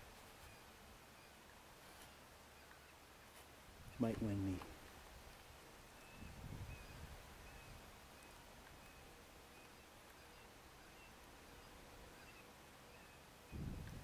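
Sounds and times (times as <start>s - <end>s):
faint high chirps: 0.2s - 3.0s, 5.9s - 14.0s.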